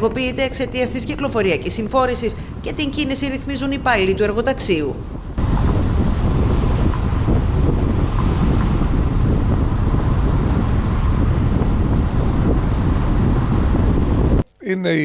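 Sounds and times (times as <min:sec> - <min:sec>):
wind buffeting microphone: 0:00.0 - 0:14.4
car rumbling on road: 0:05.4 - 0:14.4.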